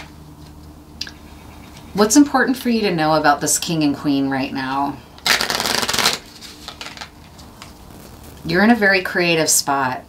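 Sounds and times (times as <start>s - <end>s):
cards shuffling: 5.2s - 8.1s.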